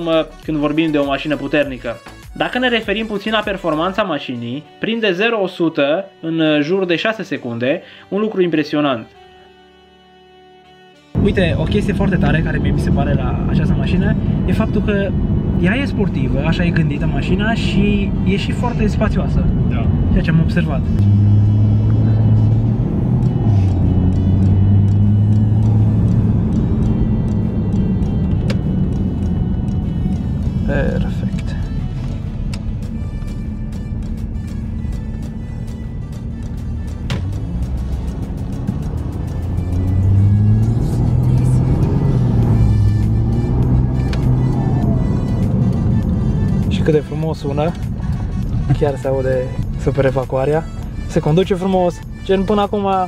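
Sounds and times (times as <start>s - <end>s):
background music: 0.0s - 53.0s
car engine drone from cabin: 11.1s - 51.8s.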